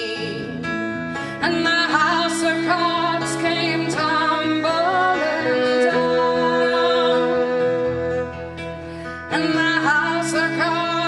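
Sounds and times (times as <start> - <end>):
guitar: 0.0 - 11.0
violin: 0.0 - 11.0
woman singing long notes: 1.4 - 8.5.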